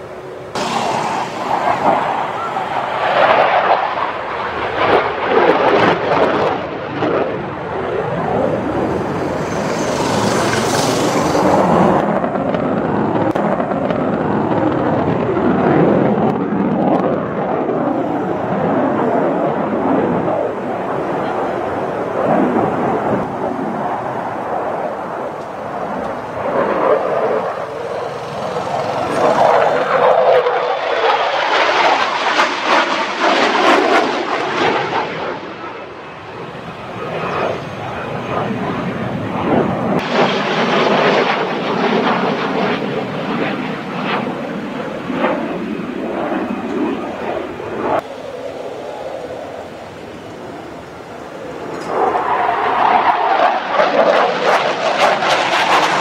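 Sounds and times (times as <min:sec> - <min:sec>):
voices: 0:00.0 - 0:04.5, 0:18.0 - 0:30.6
jet fighter flying past: 0:00.0 - 0:56.0.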